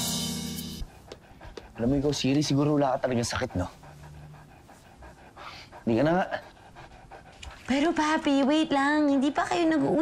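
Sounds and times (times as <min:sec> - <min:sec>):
dog panting softly: 0:00.8 - 0:10.0.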